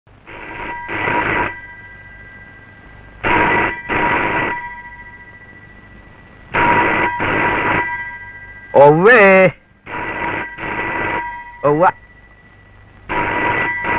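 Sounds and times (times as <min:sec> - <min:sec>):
telephone bell ringing: 0:00.3 - 0:13.9.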